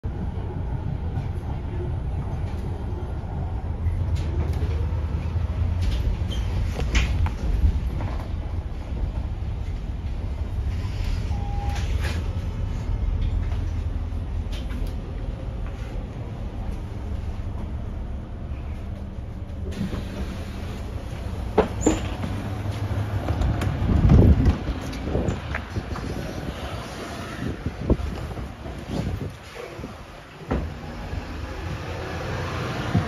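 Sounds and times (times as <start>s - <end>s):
bus engine rumble: 0.0s - 33.0s
short beep: 11.2s - 12.1s.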